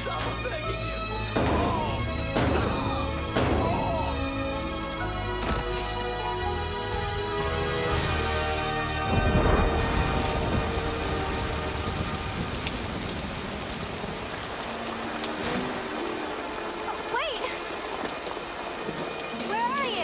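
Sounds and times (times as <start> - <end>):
heavy rain pouring: 0.0 - 20.0
thunder rumble: 8.9 - 16.8.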